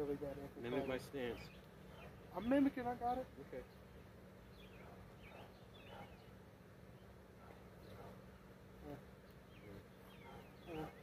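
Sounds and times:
faint low hum: 0.0 - 11.0
faint bird chirps: 0.7 - 2.8, 3.6 - 11.0.

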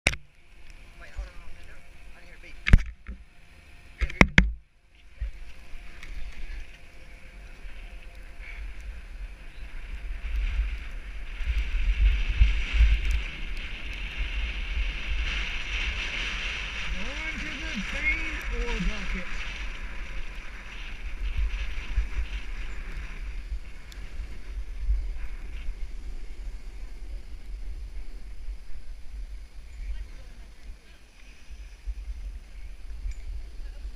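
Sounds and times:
wind buffeting microphone: 0.2 - 33.9
snowboard sliding on snow: 5.2 - 33.9.

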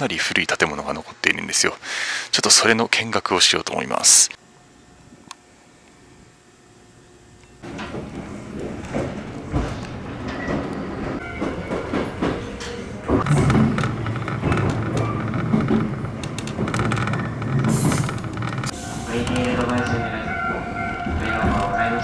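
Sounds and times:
train running gear hum: 6.8 - 22.0
wheels clacking over rails: 7.6 - 22.0.

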